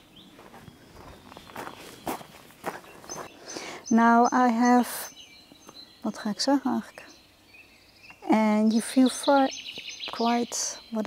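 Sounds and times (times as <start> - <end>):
faint bird chirps: 0.0 - 11.0
footsteps on gravel: 0.4 - 3.4.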